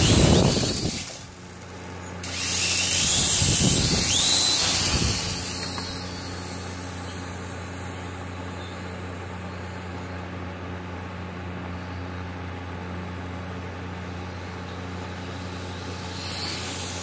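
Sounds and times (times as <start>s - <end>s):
quadcopter motor whine: 0.0s - 10.1s, 14.1s - 17.0s
steady low hum: 0.0s - 17.0s.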